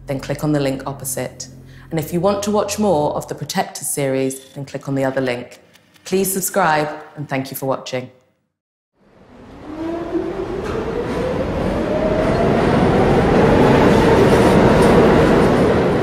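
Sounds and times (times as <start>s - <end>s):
subway train passing: 9.0s - 16.0s
train whine rising in pitch: 9.0s - 16.0s.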